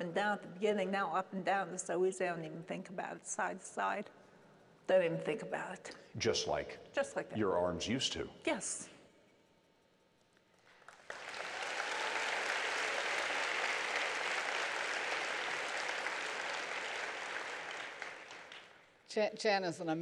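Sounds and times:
audience applauding: 0:10.7 - 0:18.8.

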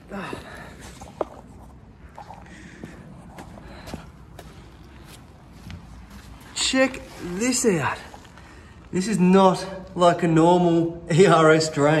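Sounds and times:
low outdoor background: 0:00.0 - 0:12.0
footsteps on concrete: 0:02.1 - 0:06.6.

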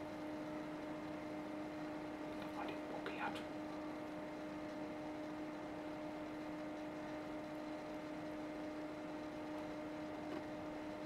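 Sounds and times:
faint two-tone hum: 0:00.0 - 0:11.0
soft room hiss: 0:00.0 - 0:11.0.

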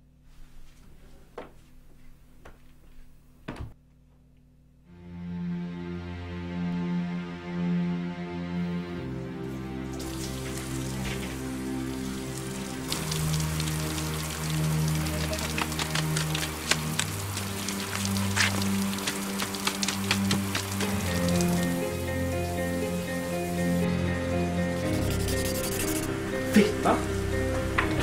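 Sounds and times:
slow music with held chords: 0:04.9 - 0:19.7, 0:20.4 - 0:28.0
heavy rain: 0:09.9 - 0:28.0.

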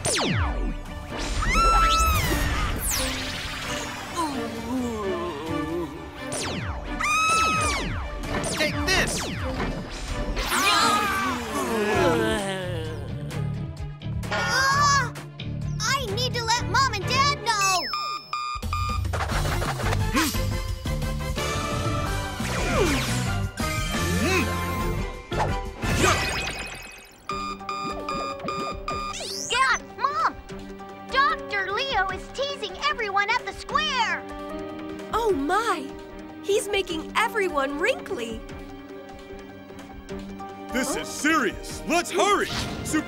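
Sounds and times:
background music: 0:00.0 - 0:43.0
rapid electronic beeps: 0:17.8 - 0:19.4, 0:26.4 - 0:29.5.

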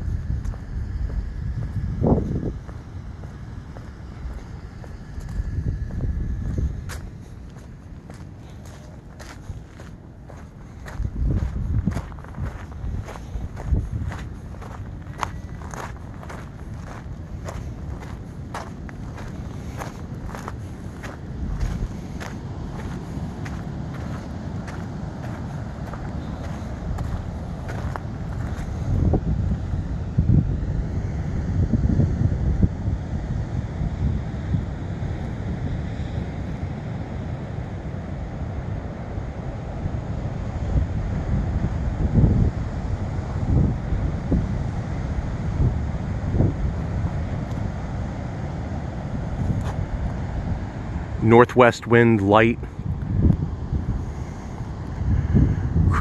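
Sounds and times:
wind buffeting the microphone: 0:00.0 - 0:51.2, 0:52.6 - 0:56.0
footsteps on sand: 0:00.3 - 0:29.1, 0:49.4 - 0:49.8.

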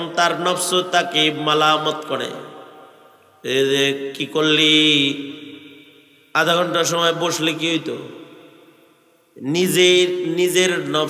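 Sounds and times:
man chanting sermon over loudspeaker: 0:09.4 - 0:11.0.

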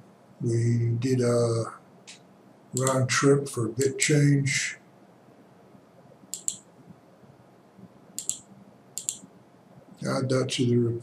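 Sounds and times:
computer mouse double clicks: 0:06.3 - 0:06.7, 0:08.2 - 0:09.3.

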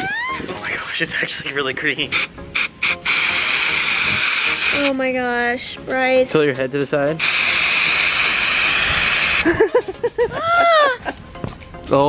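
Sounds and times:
aerosol spray hiss: 0:02.1 - 0:05.0, 0:07.2 - 0:09.5.

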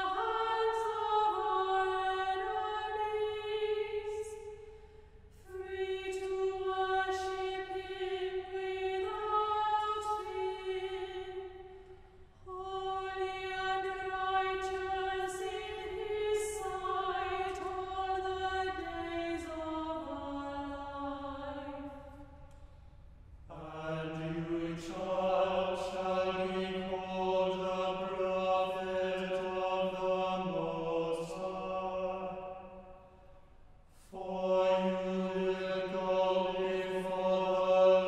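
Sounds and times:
choir singing: 0:00.0 - 0:04.7, 0:05.4 - 0:11.8, 0:12.5 - 0:22.2, 0:23.5 - 0:33.0, 0:34.0 - 0:38.0.

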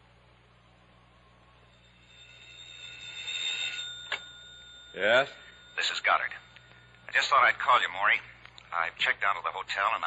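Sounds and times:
old telephone bell ringing: 0:01.6 - 0:09.9.

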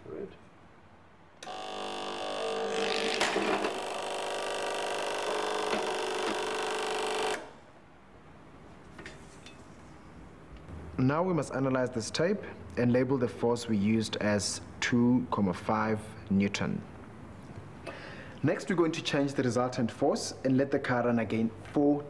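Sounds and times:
ticker-tape timer buzzing: 0:01.4 - 0:07.5.

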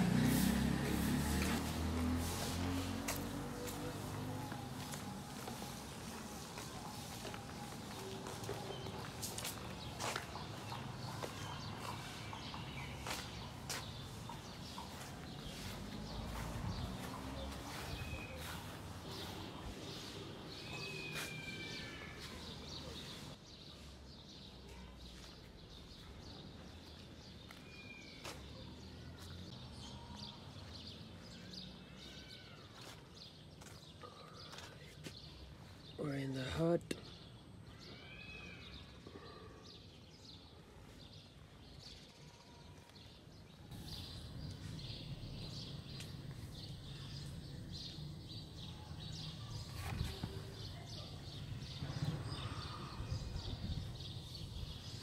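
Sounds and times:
footsteps: 0:00.0 - 0:23.4
street ambience: 0:00.0 - 0:55.0.

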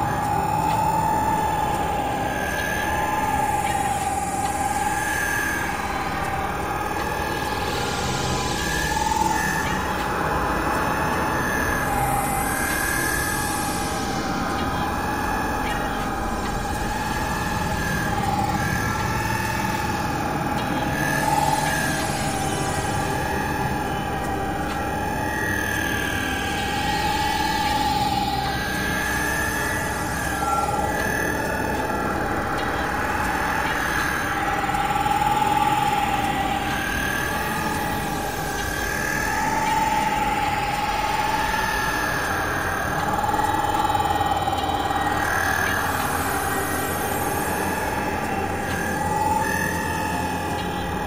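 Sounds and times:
wavering high electronic tone: 0:00.0 - 0:51.0.

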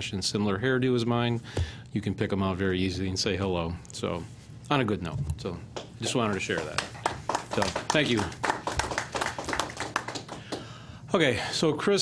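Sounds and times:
scattered applause: 0:06.3 - 0:10.8.

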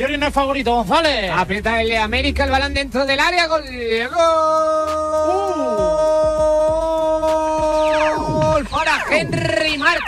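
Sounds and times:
rapid excited shouting: 0:04.0 - 0:10.0.

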